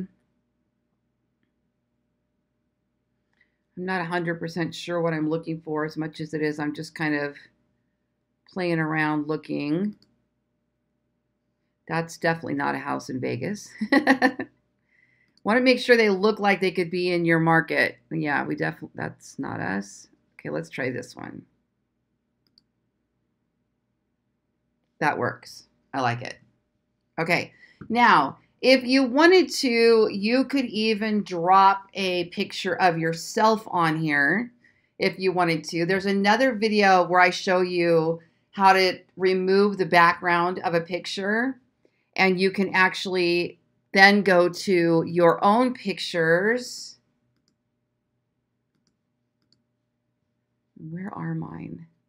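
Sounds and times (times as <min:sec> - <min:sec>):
faint computer mouse clicks: 0:47.3 - 0:47.6, 0:48.7 - 0:49.7.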